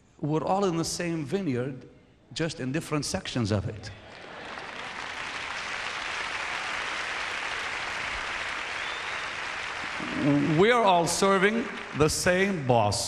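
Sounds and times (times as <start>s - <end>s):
crowd applauding: 3.9s - 13.0s.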